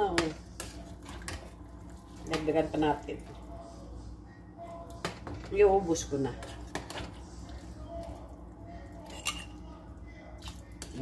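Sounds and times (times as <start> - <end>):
spoon stirring soup in pot: 0.0 - 11.0
spoon clinking on metal pot: 9.0 - 9.6.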